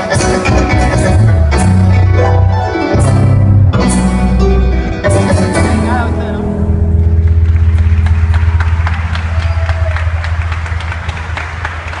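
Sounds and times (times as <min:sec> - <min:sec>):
steady low bass hum: 0:06.3 - 0:11.9
audience clapping: 0:06.9 - 0:12.0.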